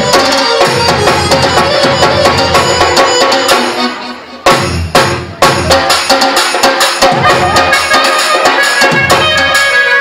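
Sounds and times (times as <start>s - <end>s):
held melody line: 0.0s - 4.6s, 7.0s - 10.0s
hand drums playing: 0.0s - 10.0s.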